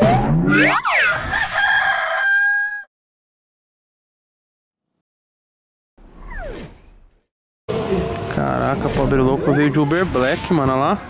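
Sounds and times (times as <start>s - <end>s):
rooster crowing: 1.1s - 2.9s.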